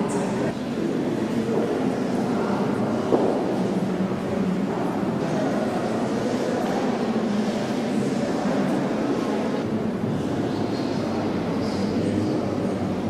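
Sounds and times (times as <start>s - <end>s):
indistinct background din: 0.0s - 13.0s.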